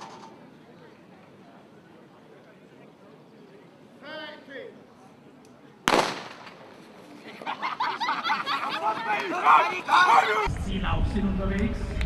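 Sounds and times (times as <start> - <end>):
starting pistol shot: 5.9 - 6.6.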